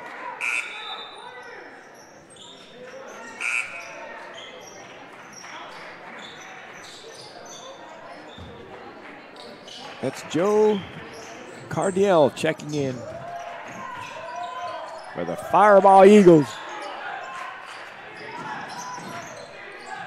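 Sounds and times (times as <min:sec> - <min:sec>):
echoing crowd chatter: 0:00.0 - 0:20.0.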